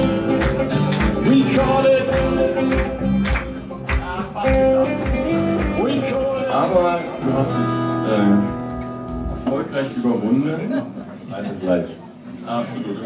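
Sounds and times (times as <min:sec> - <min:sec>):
acoustic guitar: 0:00.0 - 0:11.3.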